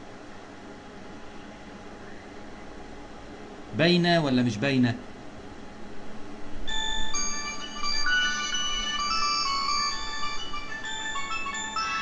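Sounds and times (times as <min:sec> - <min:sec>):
electronic phone ringtone: 0:06.7 - 0:12.0.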